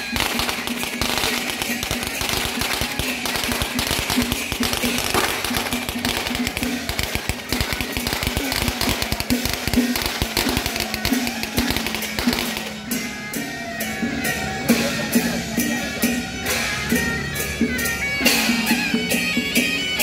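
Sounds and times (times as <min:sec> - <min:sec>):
firecrackers crackling: 0:00.0 - 0:15.7
procession music: 0:00.0 - 0:20.0.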